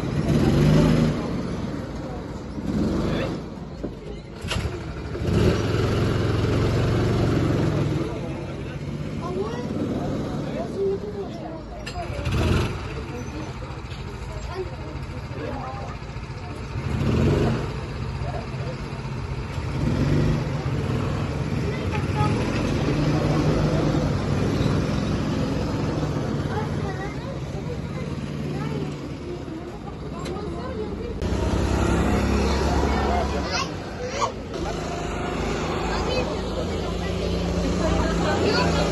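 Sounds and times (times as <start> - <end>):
go-kart engines passing: 0.0 - 38.9.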